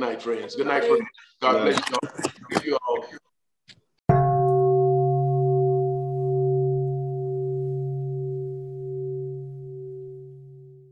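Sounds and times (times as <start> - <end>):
meditation bowl ringing: 4.1 - 10.9.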